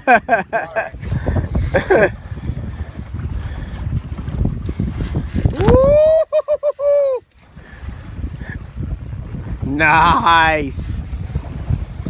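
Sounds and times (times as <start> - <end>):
boat and water noise: 0.0 - 12.0
wind buffeting microphone: 0.0 - 12.0.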